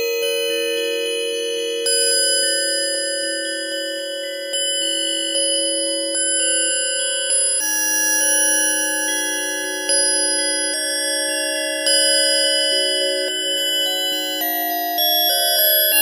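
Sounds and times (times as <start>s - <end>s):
bell-like synthesizer chords: 8.1s - 16.0s.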